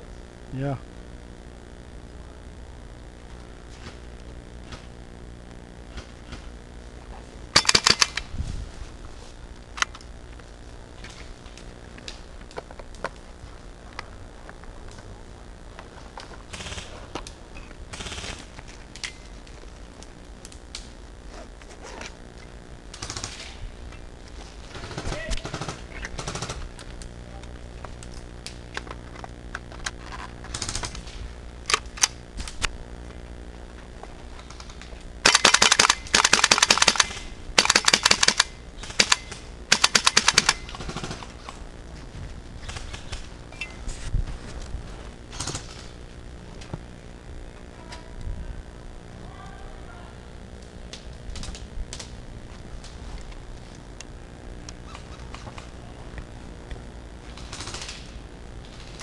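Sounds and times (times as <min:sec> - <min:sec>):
airsoft rifle full-auto bursts: 0:07.5 - 0:08.2, 0:16.5 - 0:17.0, 0:17.9 - 0:18.5, 0:22.9 - 0:23.4, 0:24.7 - 0:26.7, 0:30.5 - 0:31.1, 0:35.2 - 0:41.4, 0:57.3 - 0:59.0.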